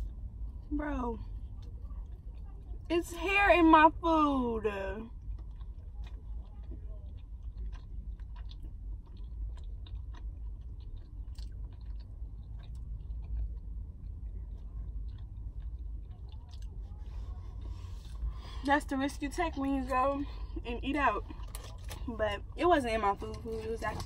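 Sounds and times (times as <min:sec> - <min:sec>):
person chewing food: 0:00.0 - 0:02.9, 0:05.0 - 0:18.7, 0:21.2 - 0:24.0.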